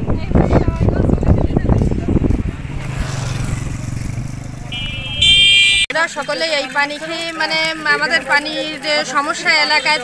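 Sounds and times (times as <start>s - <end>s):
vehicle horn: 4.7s - 5.9s.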